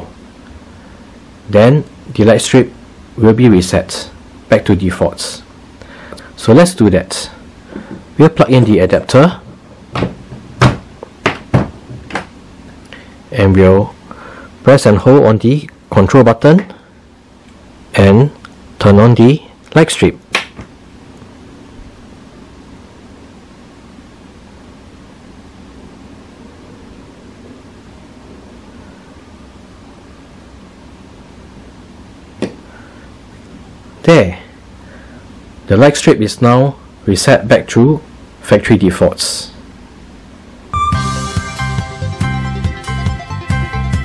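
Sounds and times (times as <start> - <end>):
low room hum and hiss: 0.0 - 44.0.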